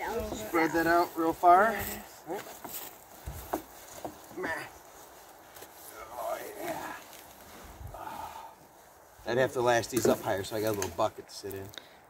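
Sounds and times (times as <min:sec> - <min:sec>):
man grunting with effort: 0:04.3 - 0:04.8.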